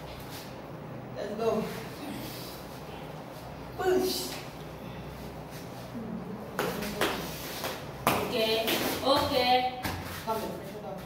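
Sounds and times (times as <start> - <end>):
bare feet scuffing on foam mat: 6.6 - 11.0.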